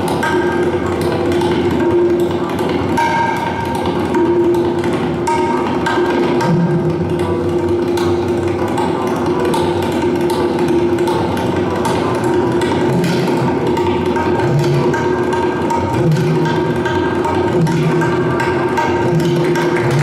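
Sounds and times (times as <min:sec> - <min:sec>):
plucked rubab: 0:00.0 - 0:20.0
tabla drumming: 0:00.0 - 0:20.0.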